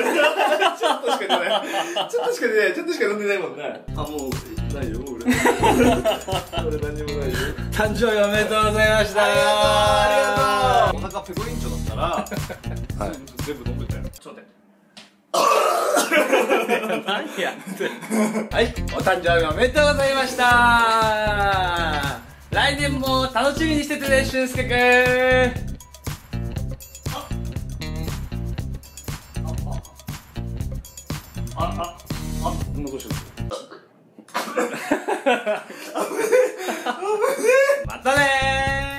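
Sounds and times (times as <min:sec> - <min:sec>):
background music: 0:03.8 - 0:14.2, 0:18.5 - 0:33.6, 0:37.5 - 0:38.9
man burping: 0:15.3 - 0:16.1, 0:27.1 - 0:27.5
man coughing and sputtering: 0:15.4 - 0:16.4, 0:27.1 - 0:27.5, 0:33.4 - 0:35.0.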